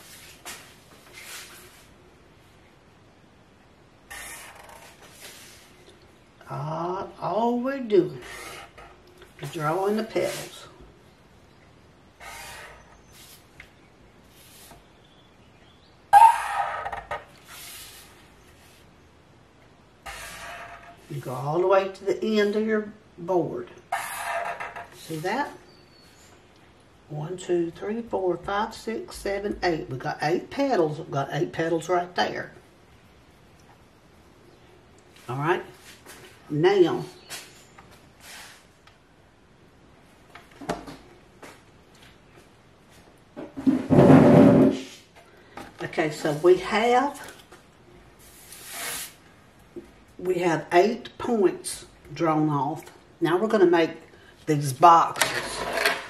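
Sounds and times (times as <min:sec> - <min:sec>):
marker squeak: 0:04.1 - 0:05.1, 0:12.2 - 0:13.4, 0:16.2 - 0:17.9, 0:20.0 - 0:21.0, 0:23.9 - 0:25.2
ruler scraping along wooden board: 0:04.1 - 0:05.7, 0:12.2 - 0:13.5, 0:20.0 - 0:21.1, 0:23.9 - 0:25.2
marker scratching on board: 0:12.2 - 0:13.4, 0:20.1 - 0:20.8.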